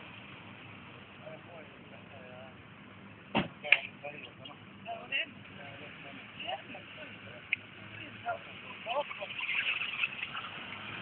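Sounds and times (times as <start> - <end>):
sharp thump: 3.3 - 3.7.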